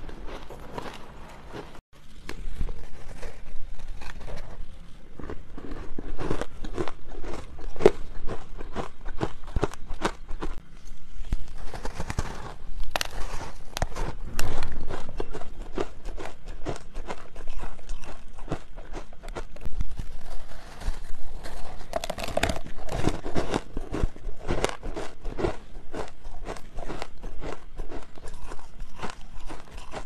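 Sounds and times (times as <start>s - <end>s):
crunching ice: 0.0s - 10.6s, 11.3s - 30.0s.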